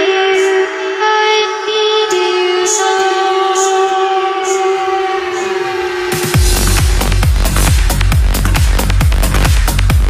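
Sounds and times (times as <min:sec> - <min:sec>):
sustained synth chords: 0:00.0 - 0:10.0.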